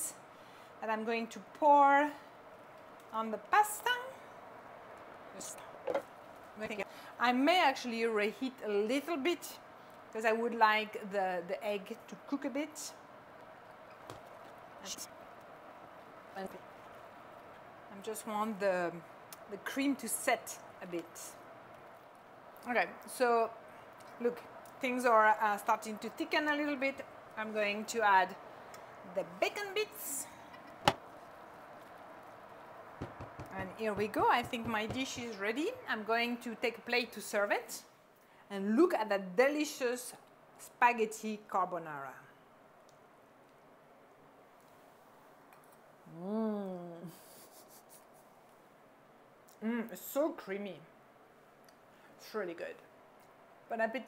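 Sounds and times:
spatula knocking pot: 33.0 - 35.3.

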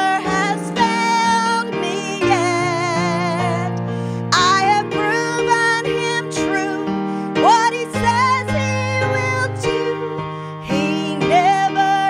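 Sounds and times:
woman singing worship song: 0.0 - 12.0.

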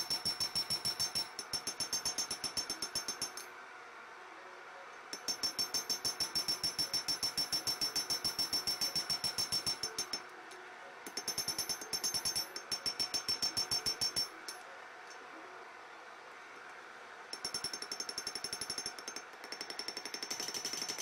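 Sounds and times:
hammer striking metal on anvil: 0.0 - 3.5, 5.2 - 10.2, 11.1 - 14.6.

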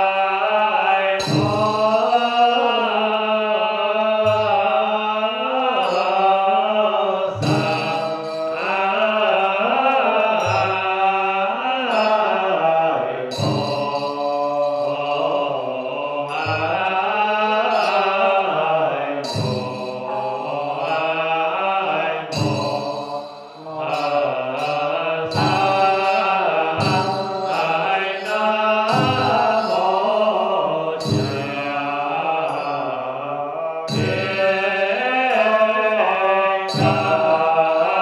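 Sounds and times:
voices chanting: 0.0 - 38.0.

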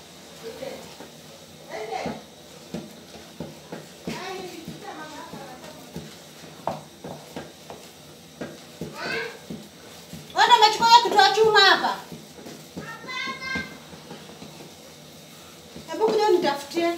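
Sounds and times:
wooden stick knocking on metal pot: 2.0 - 14.8.

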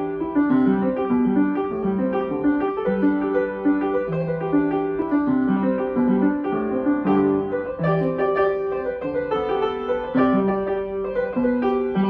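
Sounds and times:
upright piano playing: 0.0 - 12.0.

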